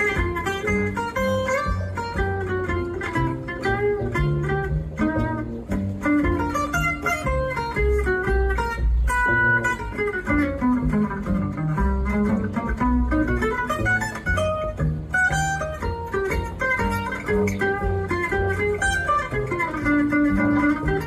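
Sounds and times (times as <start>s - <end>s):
acoustic guitar solo: 0.0s - 21.0s
bass notes: 0.0s - 21.0s.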